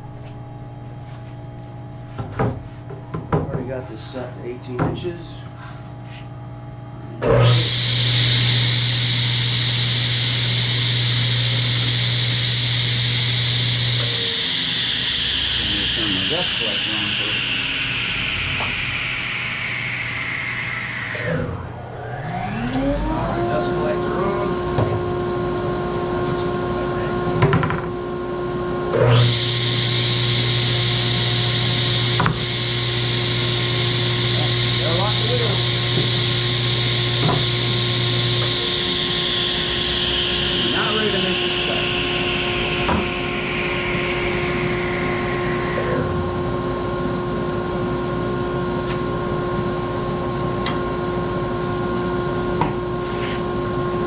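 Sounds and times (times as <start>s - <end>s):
low machine hum: 0.0s - 54.0s
saw coasting down whine: 7.1s - 54.0s.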